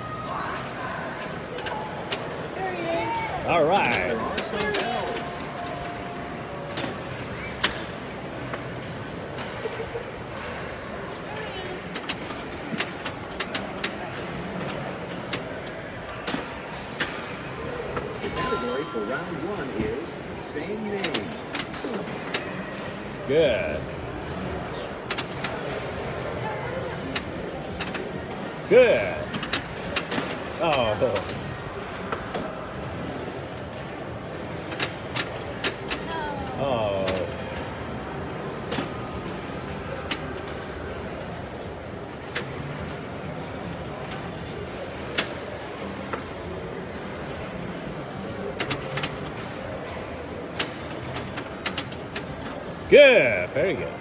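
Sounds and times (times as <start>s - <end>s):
arcade machines din: 0.0s - 54.0s
pinball arcade din: 1.0s - 9.7s
pinball flippers and ball clacking: 11.7s - 23.2s, 27.0s - 41.4s.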